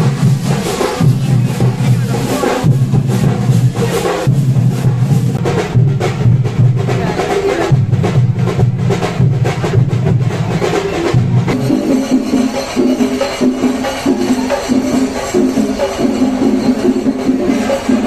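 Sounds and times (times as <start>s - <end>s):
drums beaten fast with sticks: 0.0s - 18.0s
heavy low drum: 0.0s - 18.0s
light percussion beat: 0.0s - 18.0s.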